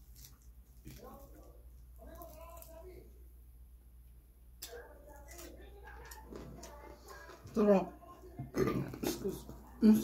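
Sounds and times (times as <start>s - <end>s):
woman belching: 8.5s - 9.2s.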